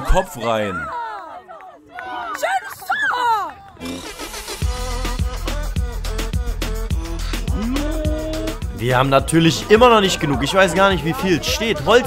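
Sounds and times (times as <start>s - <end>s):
men shouting: 5.1s - 12.0s.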